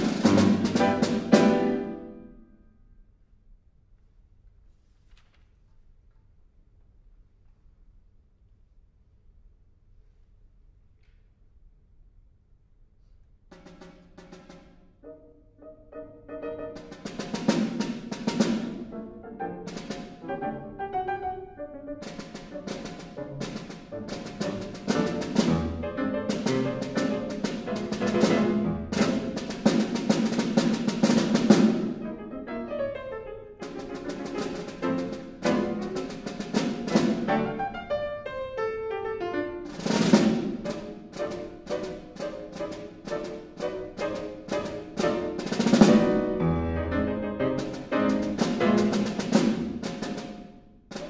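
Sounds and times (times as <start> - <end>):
snare drum strokes: 0.0 - 2.1, 13.5 - 14.8, 16.7 - 20.4, 22.0 - 32.2, 33.6 - 38.1, 39.6 - 51.0
piano phrases: 0.0 - 2.9, 14.9 - 51.0.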